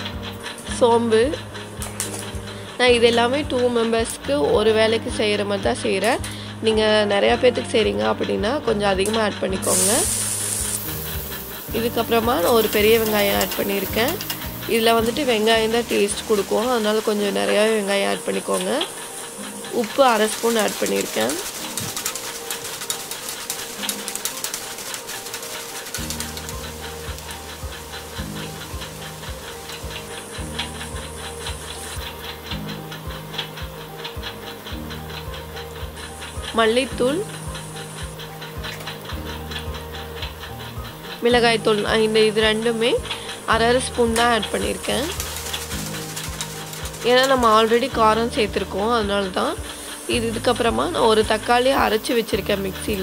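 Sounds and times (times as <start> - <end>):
onions sizzling in hot oil: 0.0 - 53.0.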